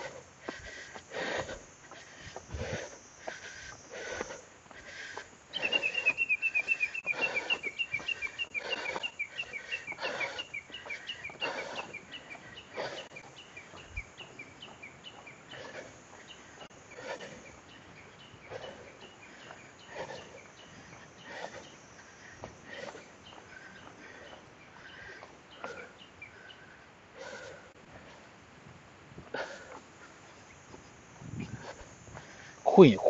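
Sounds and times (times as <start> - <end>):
footsteps on stone path: 0.0 - 26.6, 27.3 - 32.6
bird rapid high chirping: 5.5 - 15.4.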